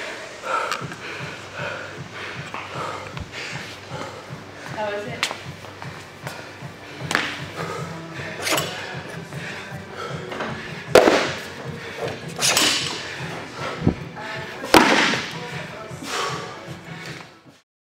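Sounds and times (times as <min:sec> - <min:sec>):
background music: 0:00.0 - 0:17.6.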